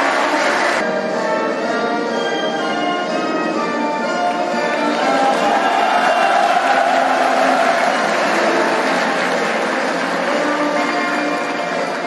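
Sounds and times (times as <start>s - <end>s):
audience applauding: 0.0s - 0.8s, 4.7s - 12.0s.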